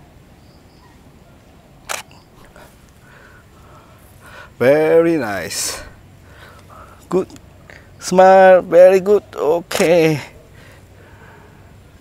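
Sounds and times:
faint outdoor background: 0:00.0 - 0:12.0
camera shutter click: 0:01.8 - 0:02.3, 0:09.7 - 0:10.0.

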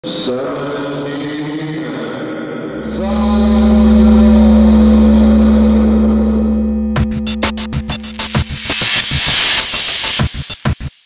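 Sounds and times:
deep sustained bass tone: 0:02.8 - 0:09.7
synthesizer drone: 0:02.8 - 0:10.3.

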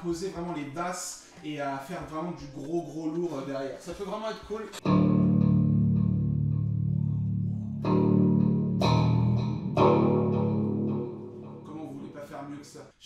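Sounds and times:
electric guitar heavy low chords: 0:04.8 - 0:12.1.

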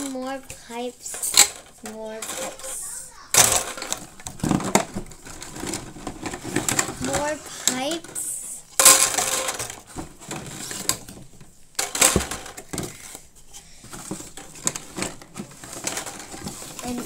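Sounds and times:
plastic pipes knocking and clattering: 0:00.0 - 0:17.0.

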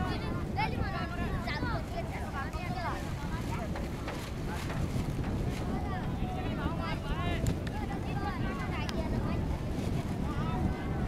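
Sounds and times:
children calling and chattering: 0:00.0 - 0:11.0
wind rumbling on microphone: 0:00.0 - 0:11.0.

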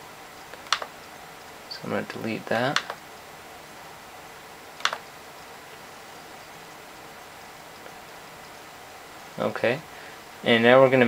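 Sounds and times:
faint hiss: 0:00.0 - 0:11.0
touchpad button click: 0:00.6 - 0:00.9, 0:02.8 - 0:03.0, 0:04.8 - 0:05.0.

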